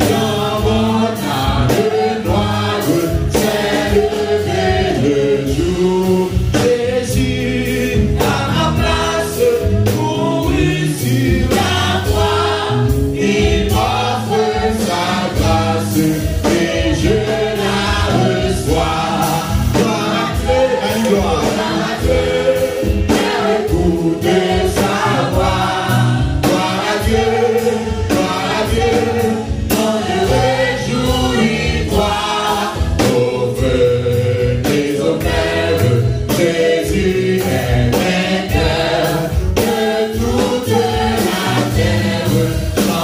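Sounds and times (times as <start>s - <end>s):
drum kit beat: 0.0s - 43.0s
gospel choir singing: 0.0s - 43.0s.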